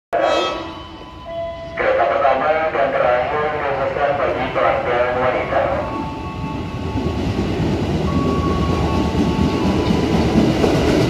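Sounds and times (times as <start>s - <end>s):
voice over loudspeakers: 0.2s - 0.8s, 1.7s - 6.2s
public-address chime tones: 0.2s - 7.2s, 8.1s - 10.3s.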